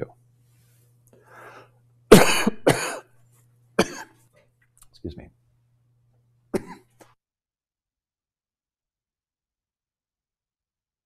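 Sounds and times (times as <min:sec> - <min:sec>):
man coughing: 0:02.1 - 0:03.1, 0:03.8 - 0:04.2, 0:06.5 - 0:07.0.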